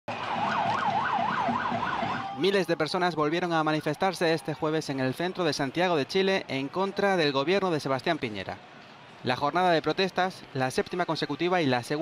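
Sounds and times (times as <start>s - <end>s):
vehicle siren yelping: 0.1s - 4.7s.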